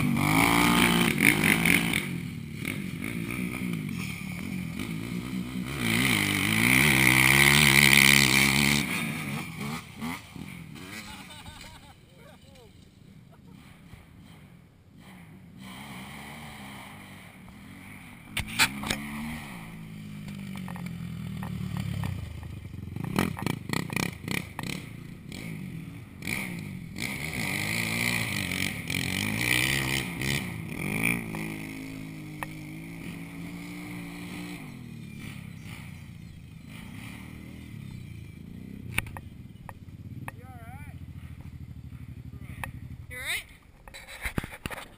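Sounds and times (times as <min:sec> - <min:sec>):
four-wheeler engines revving: 0:00.0 - 0:44.9.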